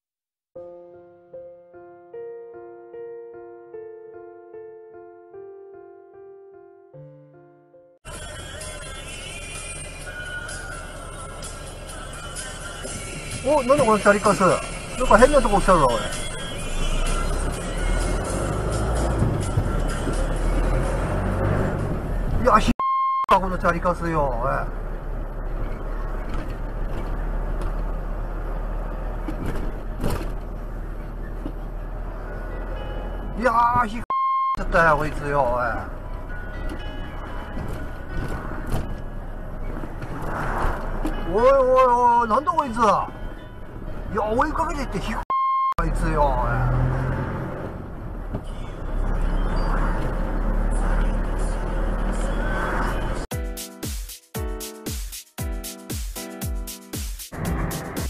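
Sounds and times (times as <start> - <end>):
car engine and road noise: 8.0 - 53.3, 57.3 - 58.0.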